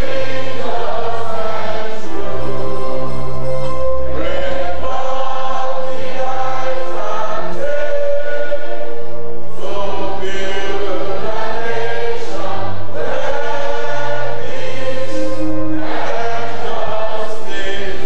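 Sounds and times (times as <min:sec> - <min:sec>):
choir singing held notes: 0:00.0 - 0:18.0
low bass line: 0:00.0 - 0:18.0.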